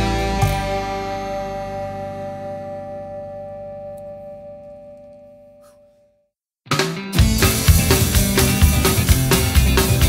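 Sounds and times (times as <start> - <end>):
electric guitar chord ringing: 0.0 - 5.6.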